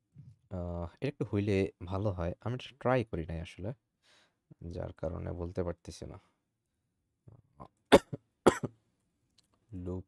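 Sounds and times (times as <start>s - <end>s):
person coughing: 7.9s - 8.7s.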